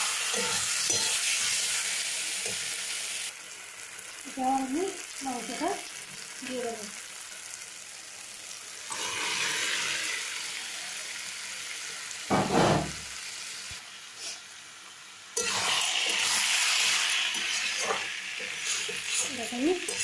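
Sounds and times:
chicken sizzling in hot oil: 0.0s - 20.0s
metal spatula stirring: 0.3s - 1.5s, 17.3s - 20.0s
loud thump: 12.3s - 13.0s.

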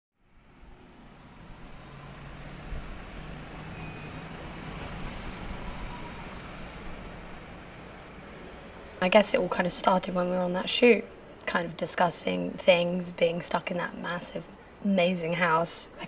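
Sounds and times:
urban traffic: 0.2s - 16.0s.

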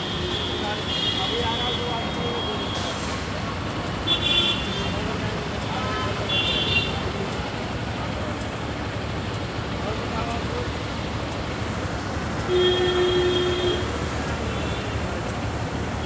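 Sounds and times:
road traffic noise: 0.0s - 16.0s.

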